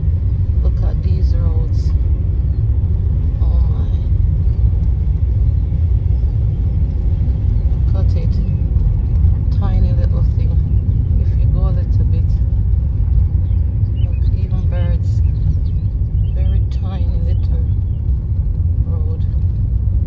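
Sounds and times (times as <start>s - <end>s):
car driving rumble: 0.0s - 20.0s.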